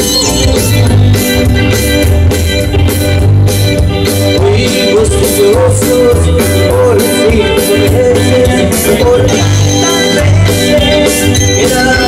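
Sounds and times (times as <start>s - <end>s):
drum kit: 0.0s - 12.0s
electric bass: 0.0s - 12.0s
electronic keyboard melody: 0.0s - 12.0s.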